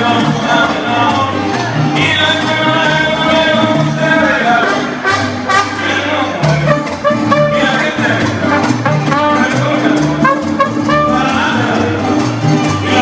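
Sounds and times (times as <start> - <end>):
strummed guitar rhythm: 0.0 - 13.0
trumpet: 4.6 - 11.9.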